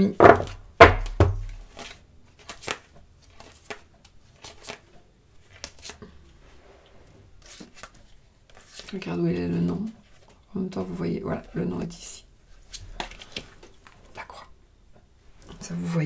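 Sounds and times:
playing cards clicking and sliding: 1.5 - 6.0, 7.4 - 8.9, 12.6 - 13.7.

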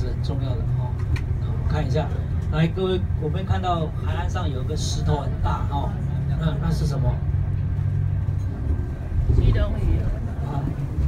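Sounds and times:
bus engine and road rumble: 0.0 - 11.0.

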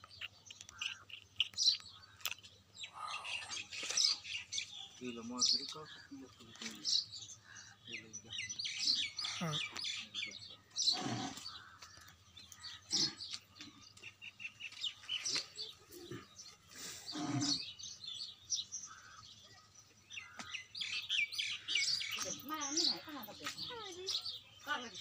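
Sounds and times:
small birds chirping: 0.0 - 25.0.

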